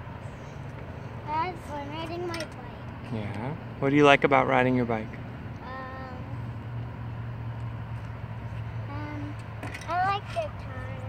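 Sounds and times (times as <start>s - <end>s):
low rumble of riding on path: 0.0s - 11.0s
child saying um: 1.2s - 2.8s, 5.6s - 6.4s, 8.9s - 11.0s.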